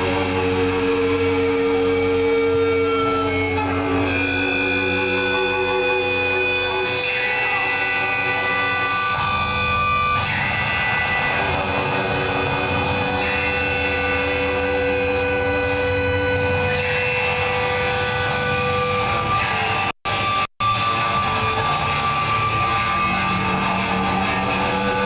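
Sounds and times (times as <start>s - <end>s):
electric guitars ringing notes: 0.0s - 25.0s.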